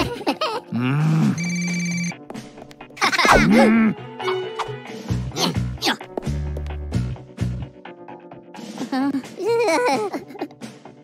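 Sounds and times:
telephone ringing: 1.4s - 2.1s.

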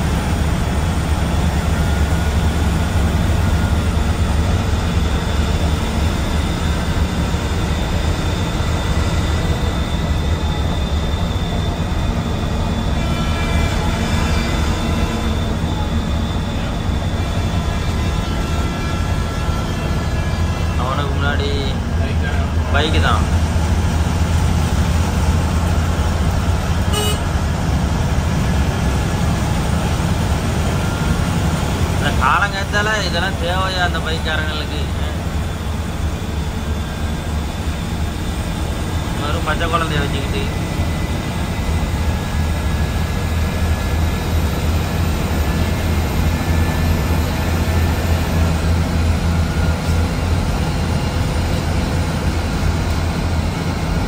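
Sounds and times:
bus engine drone: 0.0s - 54.0s
road noise: 0.0s - 54.0s.

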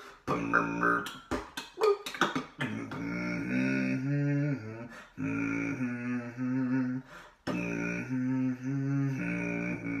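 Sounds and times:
sharp percussive beatbox hit: 0.2s - 3.1s
beatboxer humming low notes: 0.3s - 3.7s.

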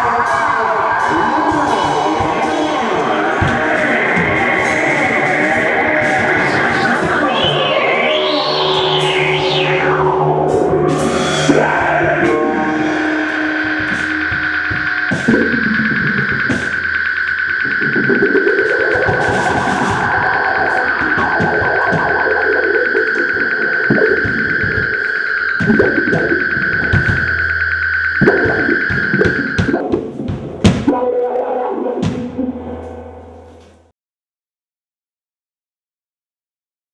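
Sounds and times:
distorted electric guitar: 0.0s - 30.6s
percussion hits: 0.0s - 31.0s.

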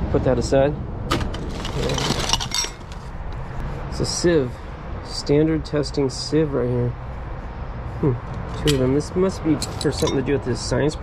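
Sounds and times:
metal and glass clinking: 1.6s - 3.0s, 8.6s - 9.0s, 9.6s - 10.3s.

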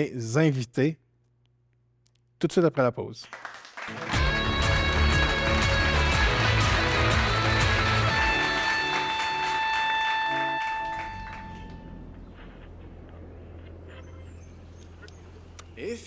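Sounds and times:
break music with heavy bass: 4.2s - 9.6s
held high synth note: 7.8s - 12.2s.

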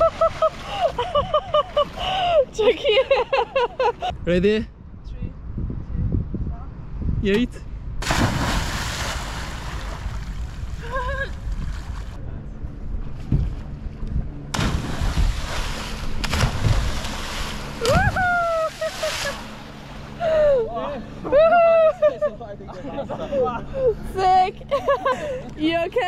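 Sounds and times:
wind rumbling on microphone: 4.0s - 19.1s
water splash: 8.0s - 10.8s, 14.5s - 20.0s
people whooping and laughing: 10.8s - 11.4s, 17.8s - 19.5s, 20.2s - 22.3s.

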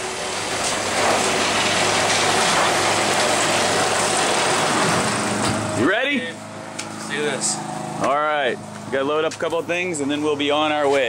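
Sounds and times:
vehicle engine idling: 3.7s - 11.0s.

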